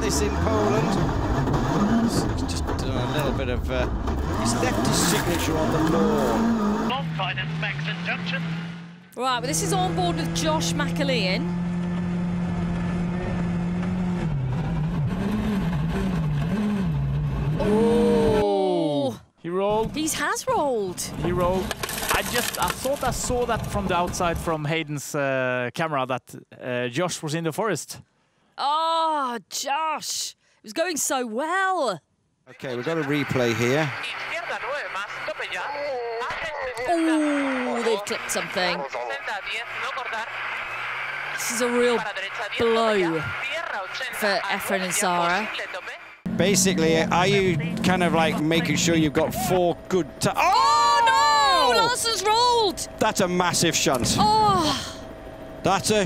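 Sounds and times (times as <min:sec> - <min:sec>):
rally car engine revving: 0:00.0 - 0:18.4, 0:21.1 - 0:24.6, 0:36.8 - 0:38.9, 0:39.7 - 0:43.4, 0:46.2 - 0:54.6
person talking: 0:09.2 - 0:11.4, 0:36.6 - 0:38.8, 0:41.4 - 0:43.3, 0:50.4 - 0:52.9.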